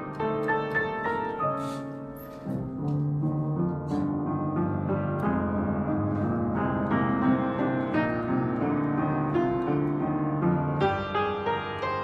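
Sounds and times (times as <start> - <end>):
piano chords and melody: 0.0 - 12.0.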